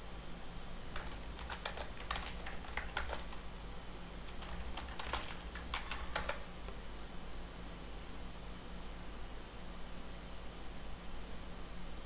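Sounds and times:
computer keyboard typing: 0.9 - 3.5, 4.2 - 6.6.

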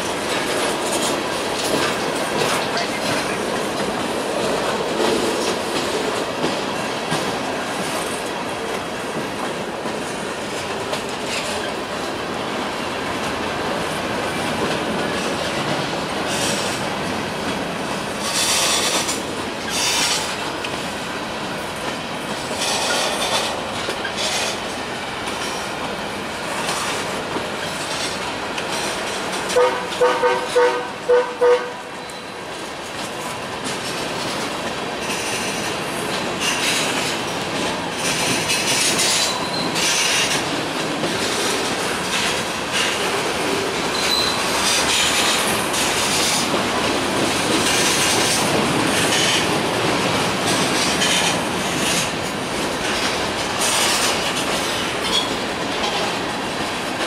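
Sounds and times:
train horn short toots: 29.5 - 32.1
wheels clicking over rail joints: 32.5 - 57.0
high-pitched wheel squeal: 43.9 - 44.4.

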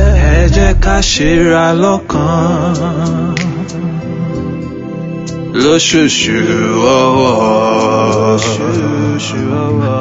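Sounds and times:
man singing slow melody: 0.0 - 10.0
sustained backing music: 0.0 - 10.0.

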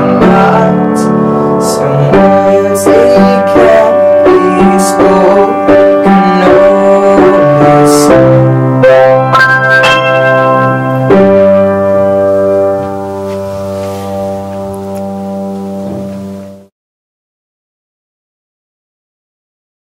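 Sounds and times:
piano chords: 0.0 - 16.7.

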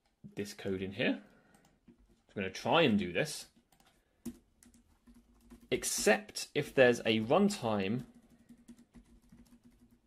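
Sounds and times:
computer keyboard keystrokes: 8.1 - 10.0.

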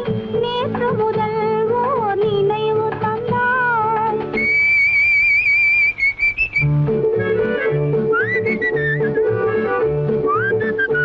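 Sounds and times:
instrumental accompaniment: 0.0 - 5.6, 6.4 - 11.0
whistled melody: 4.3 - 11.0.

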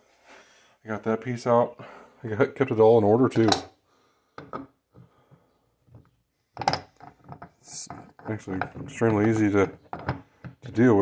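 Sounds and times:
metal parts clicking on wood: 6.0 - 10.8.

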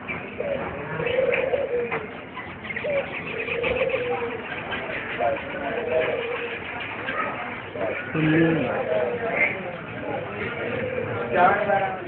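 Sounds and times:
doves cooing: 0.0 - 12.0
small birds chirping: 0.0 - 12.0.

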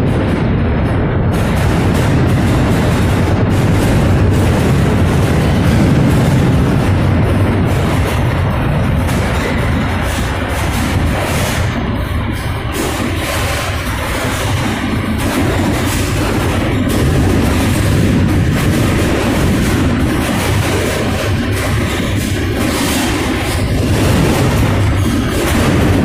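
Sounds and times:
boxcar rumbling and rattling: 0.0 - 26.0
knocks and bangs: 0.0 - 26.0.

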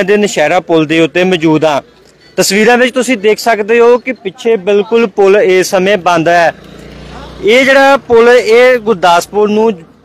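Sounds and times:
man speaking: 0.0 - 6.6, 7.4 - 10.0
motor scooter engine passing: 5.6 - 10.0.

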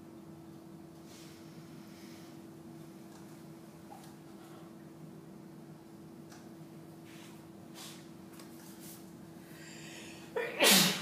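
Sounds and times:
person sneezing: 10.3 - 11.0.

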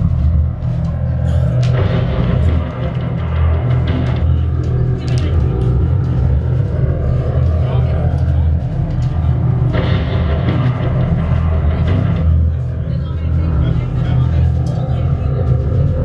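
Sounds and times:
bass guitar: 0.0 - 16.0
distorted electric guitar: 0.0 - 16.0.

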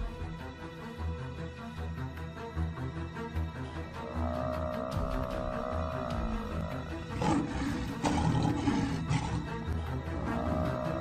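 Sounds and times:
faint background music: 0.0 - 11.0
animal roaring: 3.9 - 11.0.

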